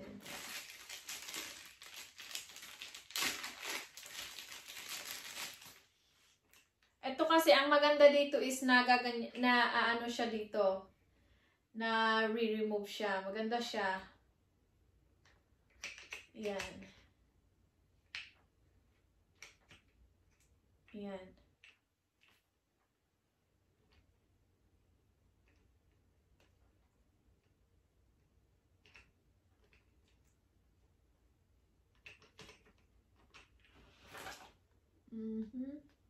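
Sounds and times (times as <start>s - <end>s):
plastic packaging crinkling: 0.0s - 5.9s.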